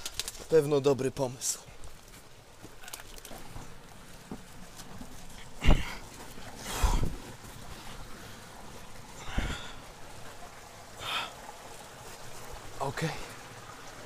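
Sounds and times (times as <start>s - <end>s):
stream rushing: 0.0s - 14.0s.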